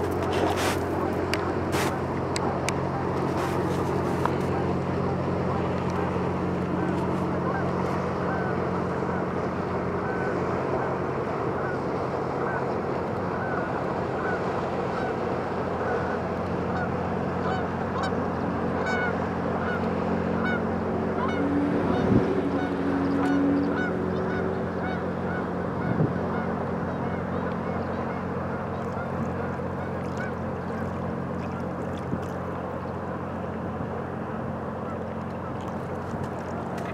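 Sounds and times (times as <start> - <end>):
ship diesel engines droning: 0.0 - 36.9.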